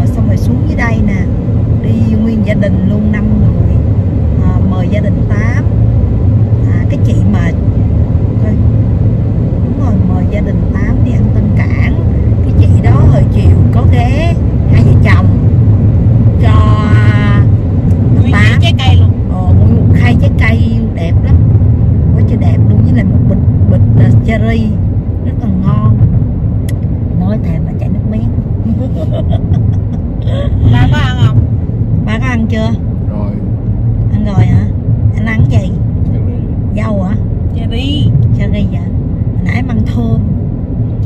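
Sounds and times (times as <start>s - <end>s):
people talking: 0.0s - 3.8s, 4.4s - 5.6s, 6.6s - 7.6s, 8.4s - 8.6s, 9.8s - 15.4s, 16.4s - 21.4s, 22.1s - 26.0s, 27.1s - 31.4s, 32.0s - 40.4s
car cabin road rumble: 0.0s - 41.0s.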